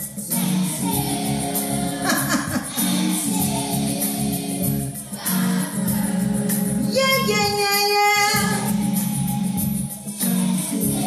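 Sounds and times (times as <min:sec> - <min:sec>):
choir singing: 0:00.0 - 0:07.3, 0:08.6 - 0:11.0
recorded backing track: 0:00.0 - 0:11.0
woman singing gospel: 0:05.3 - 0:09.0.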